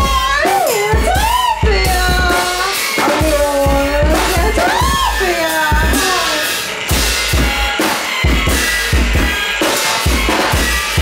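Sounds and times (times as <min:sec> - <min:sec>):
drum kit playing a beat: 0:00.0 - 0:11.0
noise-pop band track: 0:00.0 - 0:11.0.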